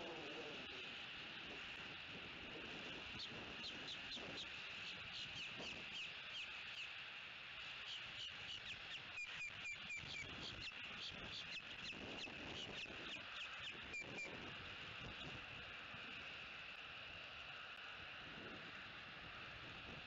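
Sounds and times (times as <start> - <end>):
birds chirping: 2.6 - 7.0, 7.6 - 15.4.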